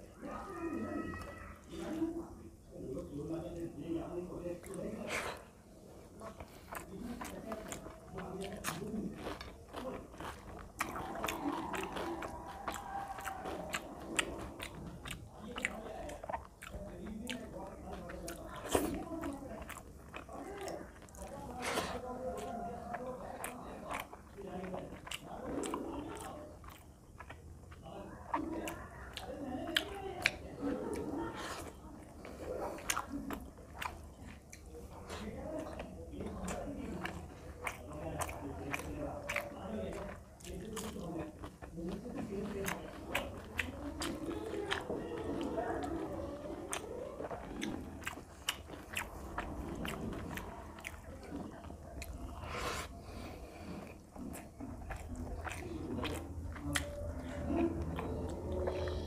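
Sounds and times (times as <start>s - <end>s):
close chewing: 0.0s - 59.0s
mouth clicks and smacks: 6.2s - 59.0s.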